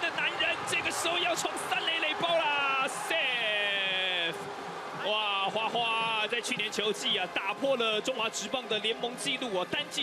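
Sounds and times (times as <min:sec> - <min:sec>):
man commentating excitedly: 0:00.0 - 0:04.4, 0:05.0 - 0:10.0.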